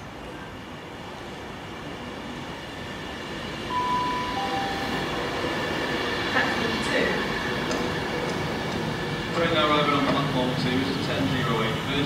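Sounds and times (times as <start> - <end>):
electric train rumble and whine: 0.0 - 12.0
falling two-note tone: 3.7 - 5.4.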